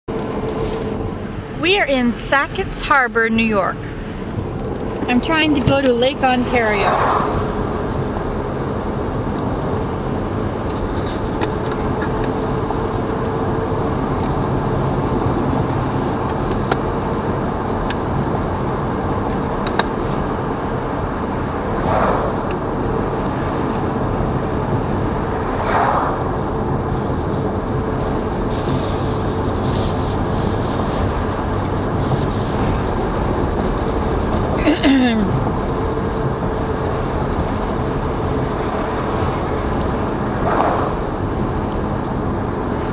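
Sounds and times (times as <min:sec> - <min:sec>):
car road and engine noise: 0:00.0 - 0:42.9.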